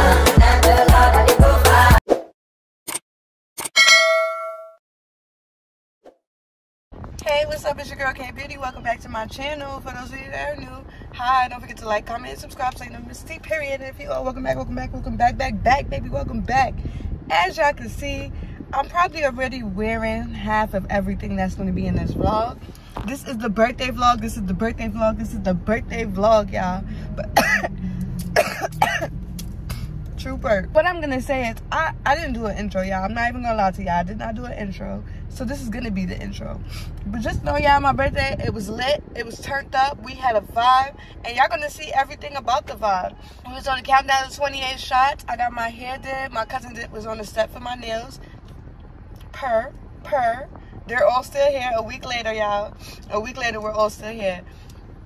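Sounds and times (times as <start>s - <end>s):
notification bell ding: 3.7s - 4.8s
woman coughing: 27.2s - 29.1s.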